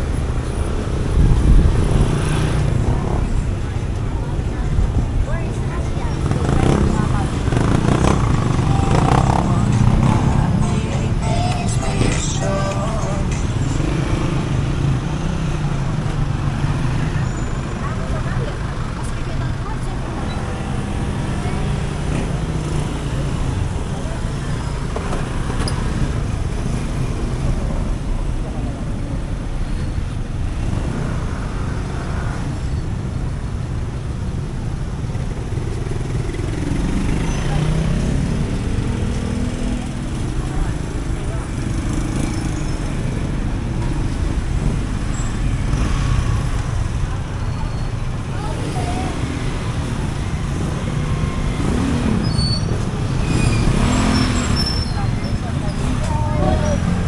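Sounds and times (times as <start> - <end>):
cars passing: 0.0 - 57.0
motorcycles passing: 0.0 - 57.0.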